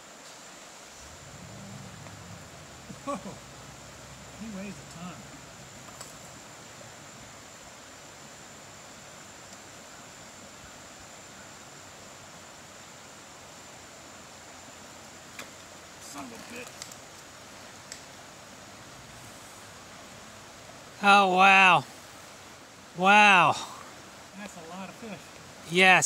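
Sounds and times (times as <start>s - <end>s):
faint high-pitched whine: 0.0s - 26.0s
outdoor background hiss: 0.0s - 26.0s
faint clicks and rustles: 15.3s - 18.2s.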